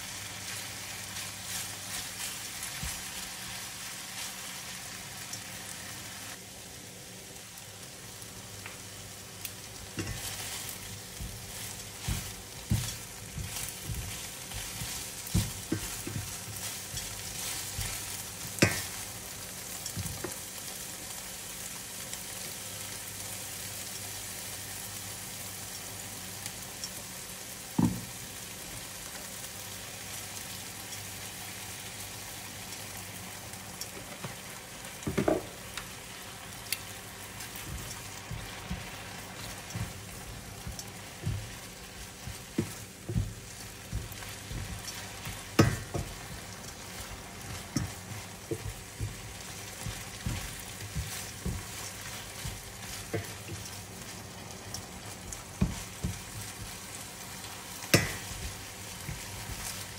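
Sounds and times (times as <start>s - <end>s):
meat sizzling in oil: 0.0s - 59.9s
metal tongs knocking on pan: 45.6s - 46.2s, 57.9s - 58.5s.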